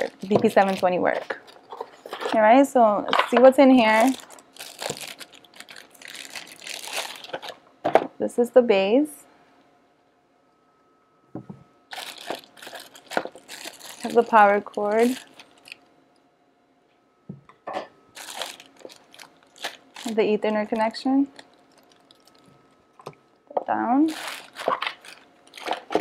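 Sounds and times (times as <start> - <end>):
plastic bag crinkling: 0.0 - 2.6, 3.6 - 7.6, 11.9 - 15.9, 18.1 - 22.9, 24.0 - 26.0.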